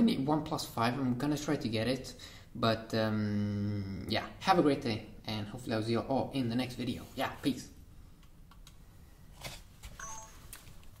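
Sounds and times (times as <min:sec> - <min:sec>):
quiet electronic beep: 0:10.0 - 0:10.6.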